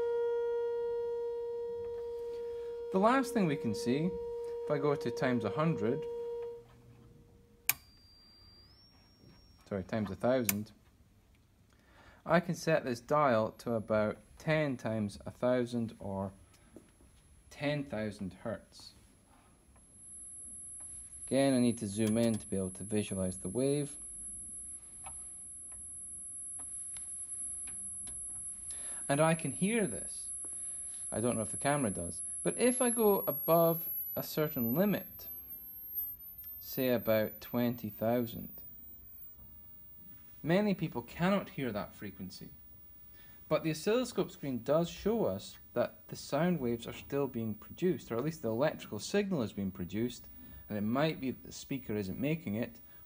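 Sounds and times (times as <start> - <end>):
steady sine-wave tone: 0.0 - 10.5, 16.4 - 53.0.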